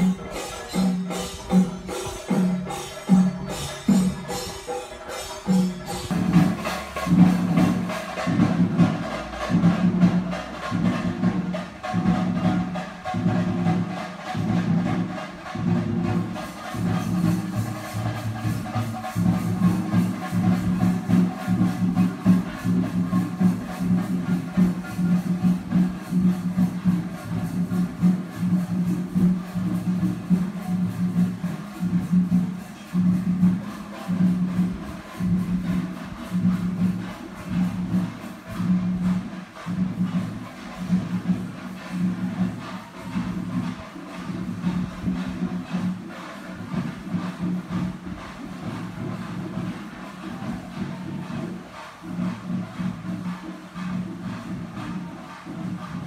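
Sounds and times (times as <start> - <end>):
drums in fast steady rhythm: 0.0 - 56.0.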